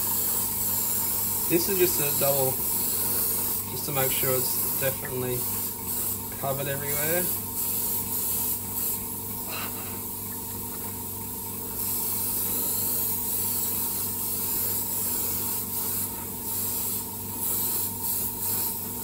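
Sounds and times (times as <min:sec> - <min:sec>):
airbrush hissing: 0:00.0 - 0:10.1, 0:11.6 - 0:19.0
steady low hum: 0:00.0 - 0:19.0.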